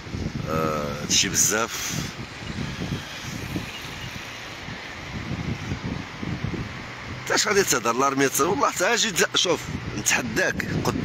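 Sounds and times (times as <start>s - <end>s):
wind buffeting microphone: 0.0s - 11.0s
even hiss: 0.4s - 5.8s.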